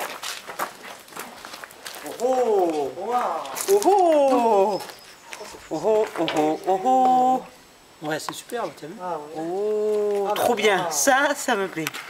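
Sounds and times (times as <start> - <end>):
footsteps on gravel: 0.0 - 7.5.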